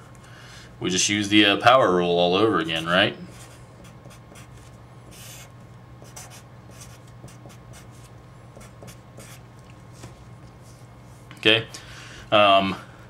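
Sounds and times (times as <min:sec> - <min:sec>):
faint low hum: 0:00.0 - 0:13.0
marker scratching on paper: 0:03.3 - 0:09.4.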